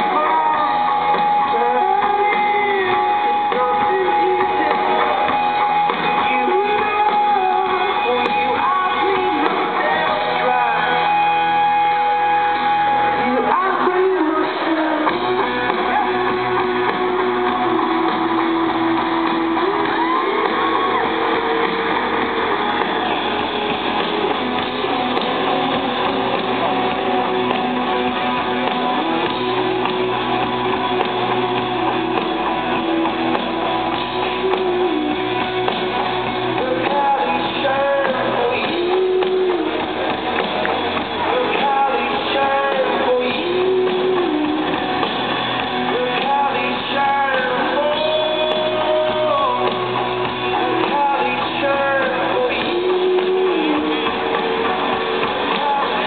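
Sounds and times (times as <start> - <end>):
live rock band playing: 0.0 - 56.0
person singing: 0.0 - 56.0
strummed guitar: 0.0 - 56.0.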